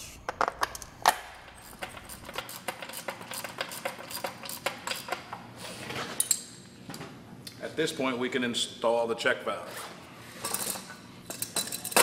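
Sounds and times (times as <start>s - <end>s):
metallic clicks of bolts and nuts: 1.6s - 5.2s.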